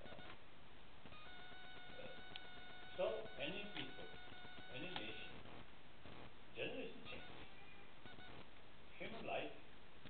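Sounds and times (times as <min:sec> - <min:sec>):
man speaking: 0:02.9 - 0:05.4, 0:09.0 - 0:09.6.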